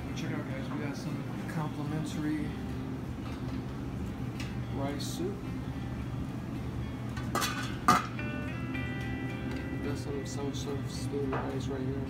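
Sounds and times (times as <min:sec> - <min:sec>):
background music: 0:01.9 - 0:12.0
metal lid clinking on pot: 0:07.3 - 0:08.2.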